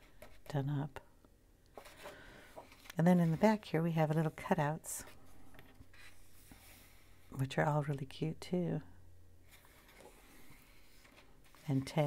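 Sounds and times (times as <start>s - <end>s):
hands rustling on paper: 1.8s - 7.1s.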